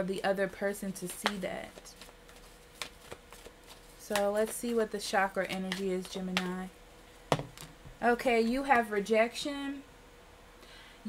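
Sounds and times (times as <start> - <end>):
cards clicking and rustling: 1.0 - 6.5.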